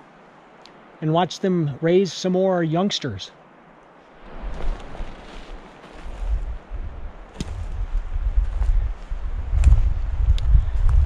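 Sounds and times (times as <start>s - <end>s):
wind rumbling on microphone: 3.9s - 11.0s.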